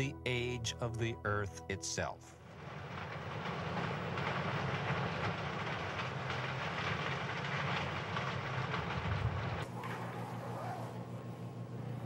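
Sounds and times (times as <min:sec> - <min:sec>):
conveyor belt rushing and rattling: 0:02.4 - 0:12.0.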